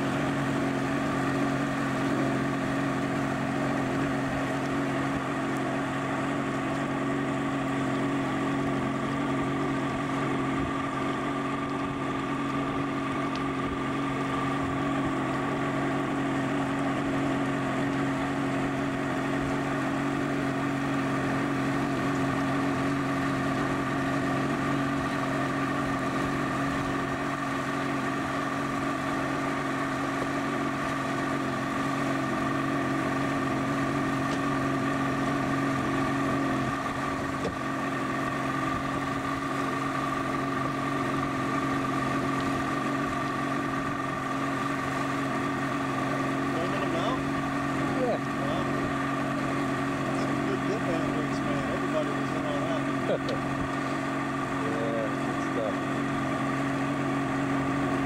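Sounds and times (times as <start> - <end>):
motorboat engine running: 0.0 - 58.0.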